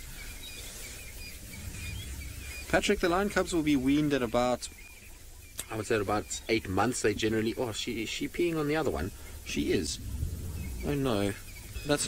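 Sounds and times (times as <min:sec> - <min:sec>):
low steady rumble: 0:00.7 - 0:05.5, 0:07.3 - 0:12.0.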